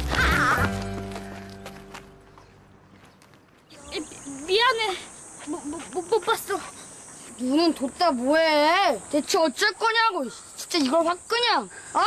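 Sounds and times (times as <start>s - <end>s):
young voices calling: 0.0s - 1.6s, 3.6s - 12.0s.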